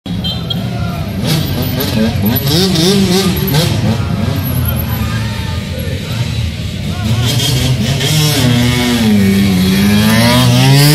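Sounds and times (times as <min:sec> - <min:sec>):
people's voices: 0:00.1 - 0:10.9.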